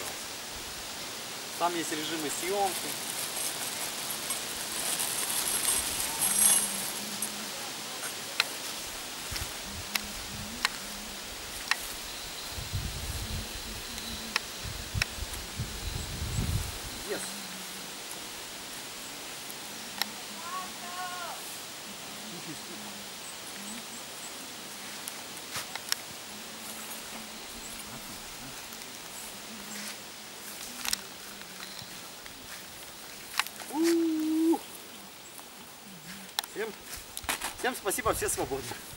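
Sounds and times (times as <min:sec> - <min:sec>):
rustling: 0:01.5 - 0:18.8, 0:19.7 - 0:38.9
wind gusts on microphone: 0:08.8 - 0:18.6, 0:37.0 - 0:38.9
held vocal note: 0:33.7 - 0:34.7.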